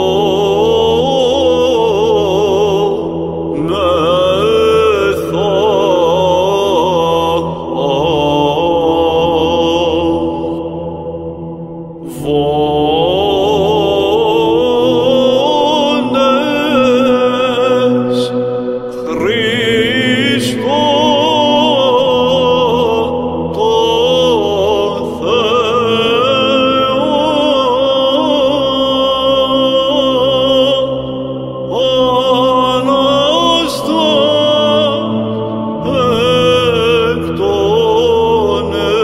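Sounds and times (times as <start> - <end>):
melismatic chanting: 0.0 - 39.0
steady low drone: 0.0 - 39.0.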